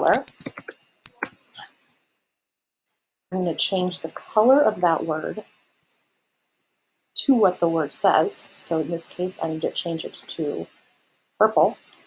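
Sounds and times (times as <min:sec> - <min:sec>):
computer keyboard keystrokes: 0:00.0 - 0:01.4.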